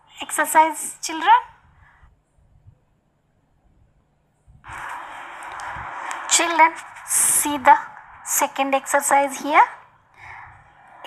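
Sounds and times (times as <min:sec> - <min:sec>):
steady breathy hiss: 0:04.6 - 0:11.0.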